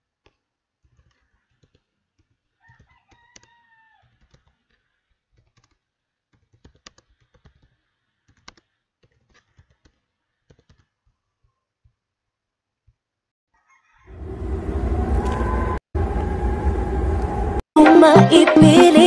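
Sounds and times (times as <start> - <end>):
computer keyboard typing: 6.4 - 10.8.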